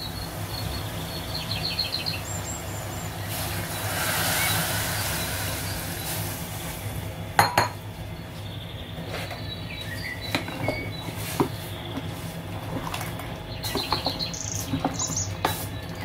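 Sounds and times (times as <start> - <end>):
low steady hum: 0.0 - 16.0
water pouring into pot: 2.6 - 7.0.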